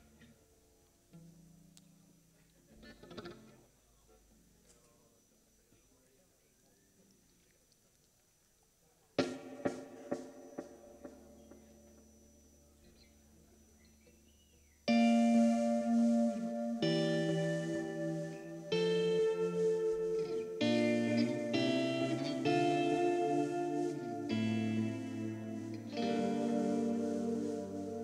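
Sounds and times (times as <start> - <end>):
electric guitar sustained chords: 14.9 - 28.0.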